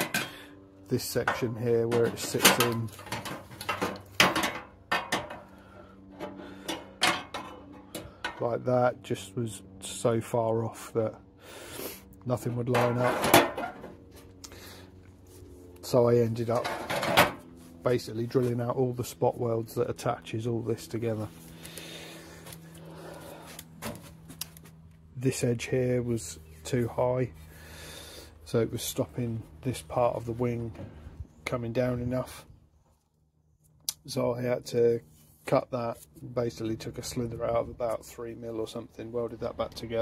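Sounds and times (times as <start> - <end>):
low steady hum: 0.0 - 40.0
handling and rustling noise: 1.2 - 5.5.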